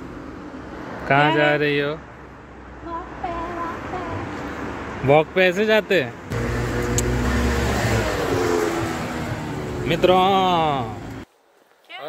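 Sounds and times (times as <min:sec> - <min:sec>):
car passing: 0:00.0 - 0:11.3.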